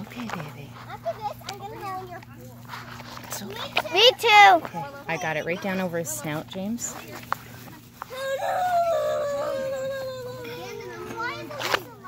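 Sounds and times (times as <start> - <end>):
high-pitched whining cry: 8.0 - 12.0.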